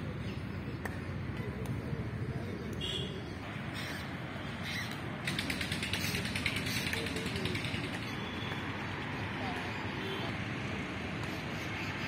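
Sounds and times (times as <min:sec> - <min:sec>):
fast ratchet-like clicking: 0:05.2 - 0:08.1.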